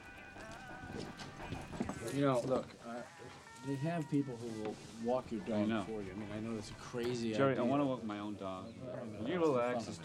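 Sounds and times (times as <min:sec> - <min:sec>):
soft music: 0:00.0 - 0:08.6.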